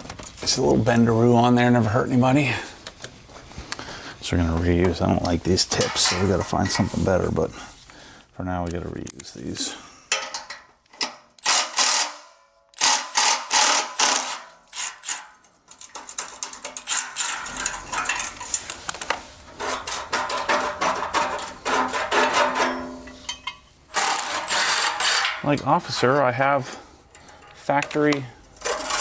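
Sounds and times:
electric ratchet clicking whir: 11.4s - 15.2s, 23.9s - 25.4s
metal clinks: 22.7s - 23.8s.

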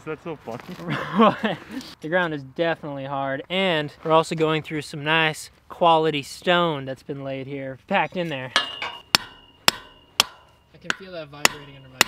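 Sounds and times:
sledgehammer striking metal stake: 8.5s - 12.0s.

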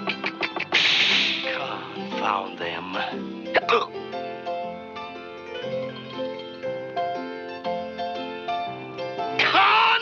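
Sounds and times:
orchestral cartoon music: 0.0s - 10.0s.

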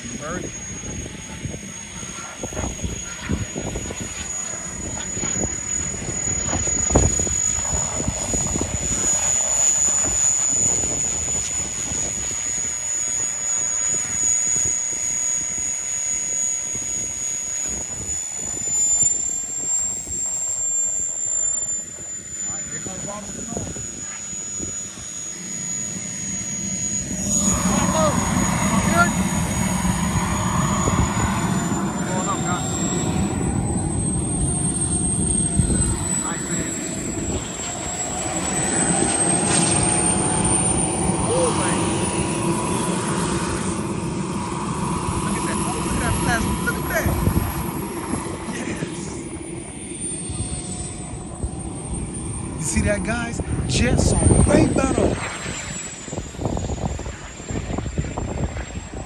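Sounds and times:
jet turbine whine: 0.0s - 59.0s.

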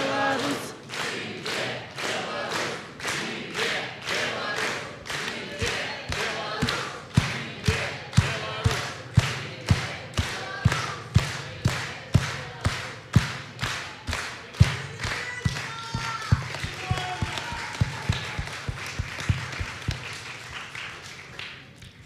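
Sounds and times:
audience clapping in unison: 0.0s - 22.0s
loose applause: 0.0s - 22.0s.

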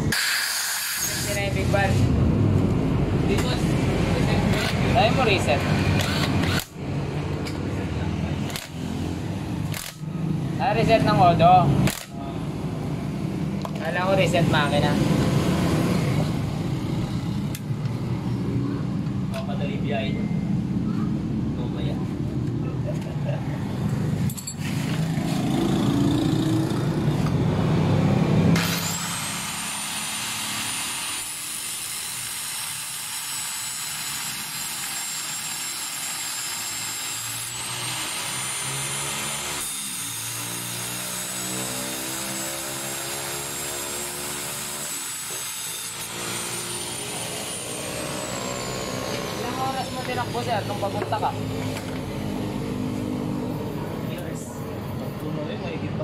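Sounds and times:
power tool whining: 0.0s - 1.7s, 3.4s - 7.6s, 8.4s - 10.4s, 28.2s - 53.1s.

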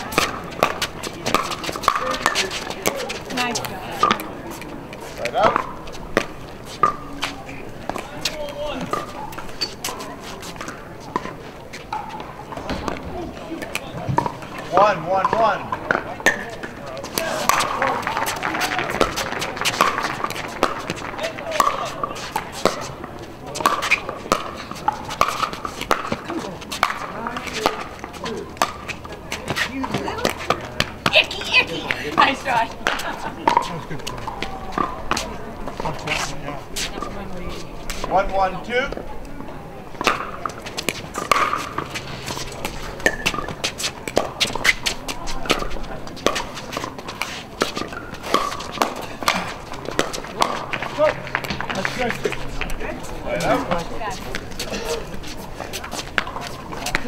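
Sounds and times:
indistinct voices: 0.0s - 14.7s.

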